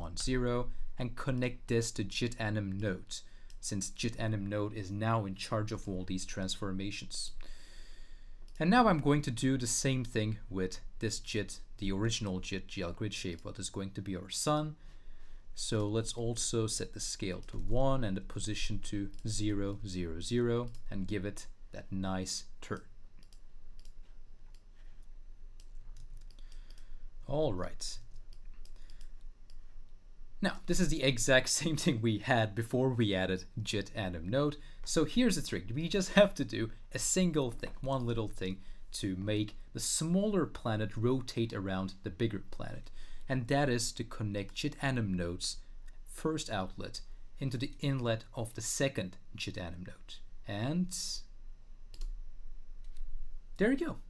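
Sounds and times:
low steady hum: 0.0s - 54.0s
keyboard and mouse clicks: 22.7s - 24.7s
computer mouse clicks: 22.7s - 24.8s, 25.6s - 26.9s, 28.1s - 29.7s, 51.9s - 52.2s.

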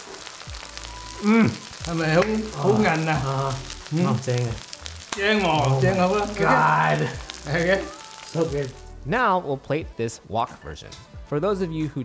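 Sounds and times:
noodles frying in a wok: 0.0s - 9.0s
man speaking: 1.3s - 4.6s, 5.2s - 12.0s.

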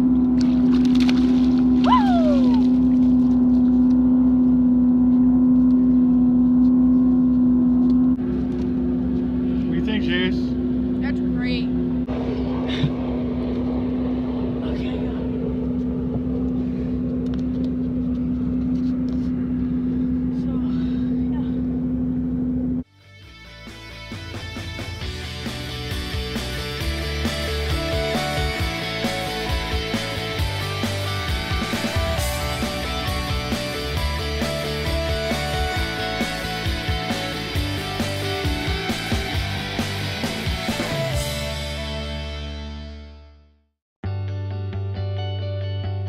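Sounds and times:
boat motor droning: 0.0s - 22.9s, 23.6s - 43.5s
guitar music: 23.0s - 46.0s.

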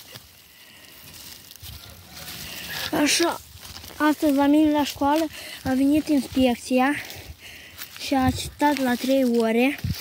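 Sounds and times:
footsteps through dry leaves: 0.0s - 10.0s
person speaking: 2.0s - 10.0s.

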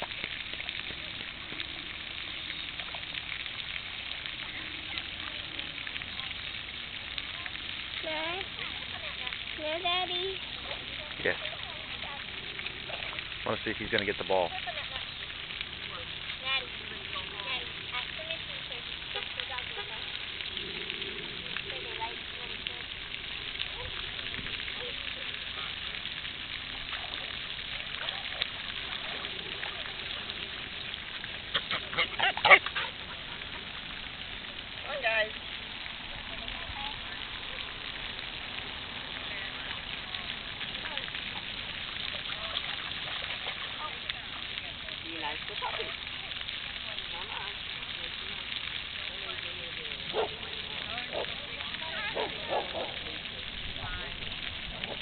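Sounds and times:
steady outdoor hiss: 0.0s - 55.0s
distant indistinct voices: 14.8s - 55.0s.

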